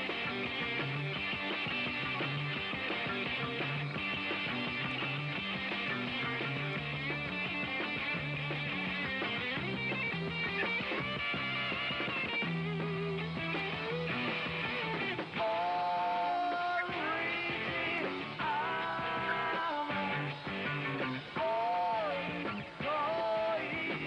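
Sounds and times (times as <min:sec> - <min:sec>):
rock and roll band playing: 0:00.0 - 0:24.0.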